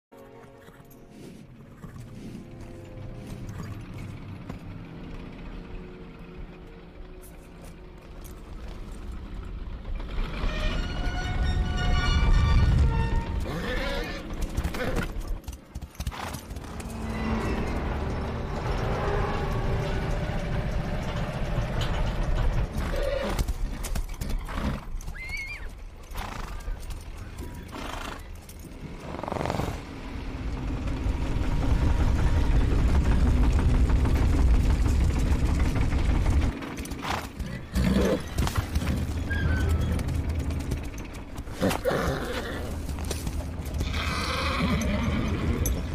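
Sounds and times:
film music: 0.1s - 45.9s
hooves clip-clopping: 0.2s - 6.0s, 6.6s - 9.7s, 10.4s - 29.8s, 30.7s - 45.9s
horse neighing: 13.4s - 15.2s, 22.7s - 26.8s, 41.5s - 43.1s, 43.8s - 45.9s
heavy low rumble: 16.4s - 24.2s, 29.6s - 45.9s.

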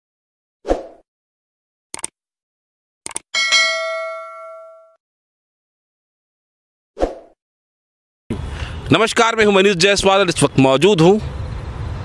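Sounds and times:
bright bell ding: 3.4s - 5.0s.

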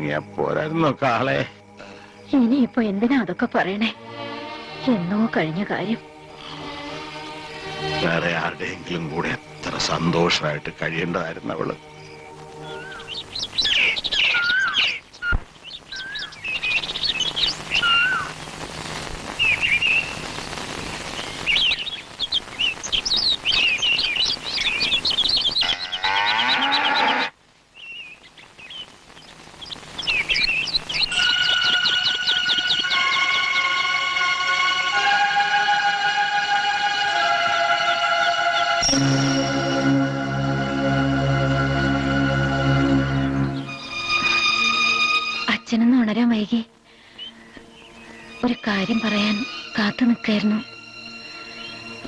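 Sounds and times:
birds chirping: 0.0s - 52.0s
soft ambient hiss: 0.0s - 52.0s
sustained music notes: 3.6s - 13.6s, 31.0s - 52.0s.

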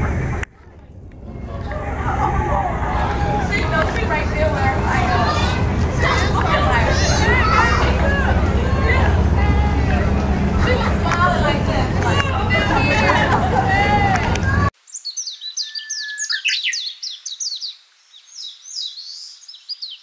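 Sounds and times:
chatter of voices: 0.0s - 14.7s
steady low rumble: 0.0s - 14.7s
songbird singing: 14.4s - 20.0s.

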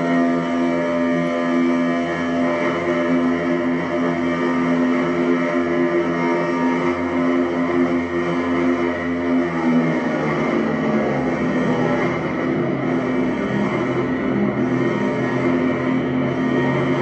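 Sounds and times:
electronic drone of sustained tones: 0.0s - 17.0s.

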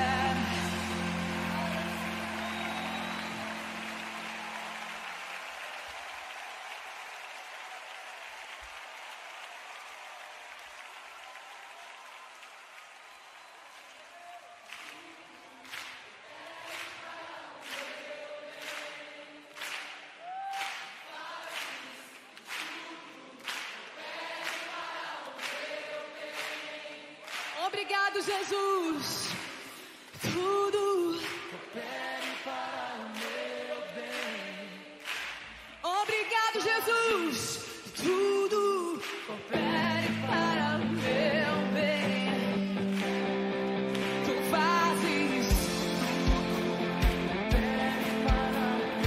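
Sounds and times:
voices singing along: 0.0s - 4.2s, 16.2s - 19.7s, 21.0s - 27.4s, 30.4s - 35.3s
worship song chord ringing: 0.0s - 5.1s
congregation clapping rhythmically: 0.0s - 49.0s.

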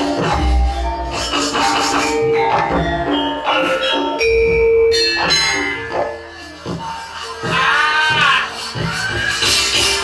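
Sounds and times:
gamelan metallophones ringing: 0.0s - 8.2s.

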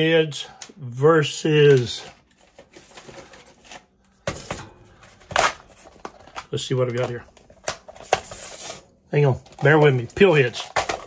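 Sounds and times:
rummaging through small objects: 1.5s - 11.0s
clattering rustles: 2.0s - 7.2s.

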